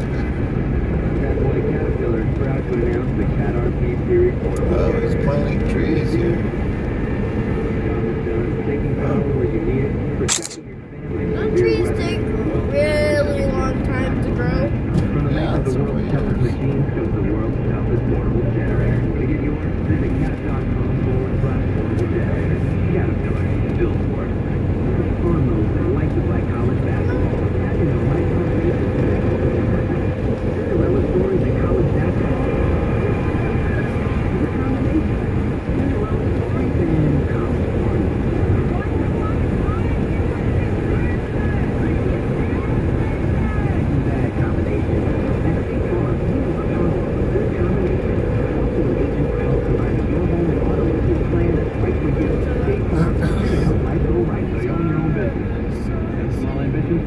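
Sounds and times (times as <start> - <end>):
car road and engine rumble: 0.0 - 57.0
faint indistinct talk: 7.6 - 57.0.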